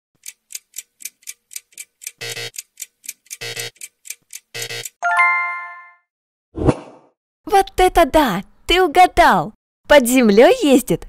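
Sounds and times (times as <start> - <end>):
light clock ticks: 0.2 - 5.0.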